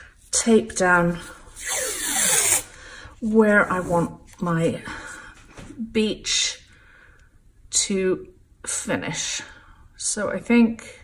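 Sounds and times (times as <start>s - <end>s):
masking tape pulled off roll: 1.6s - 2.7s.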